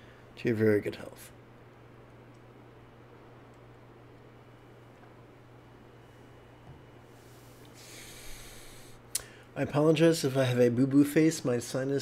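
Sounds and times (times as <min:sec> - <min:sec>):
man sniffing through nose: 0:07.4 - 0:09.0.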